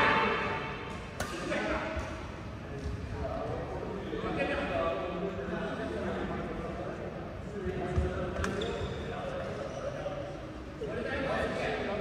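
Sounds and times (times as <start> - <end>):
racket hitting shuttlecock: 0.8 - 1.6.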